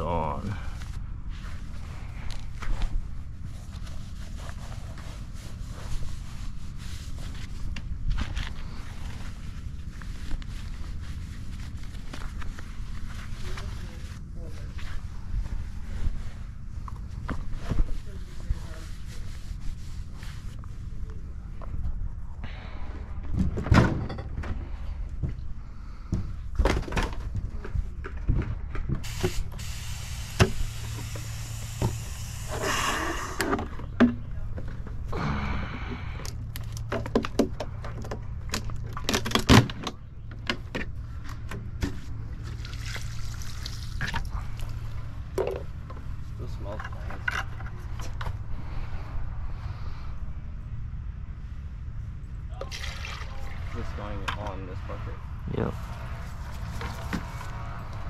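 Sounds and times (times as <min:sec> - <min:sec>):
steady low hum: 0:00.0 - 0:58.0
liquid pouring into bucket: 0:42.6 - 0:44.2, 0:52.6 - 0:53.6.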